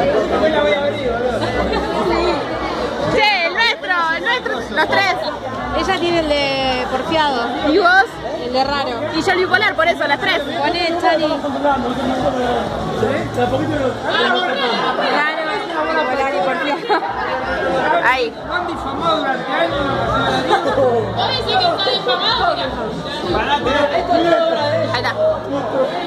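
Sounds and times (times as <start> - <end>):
people talking at once: 0.0 - 26.0.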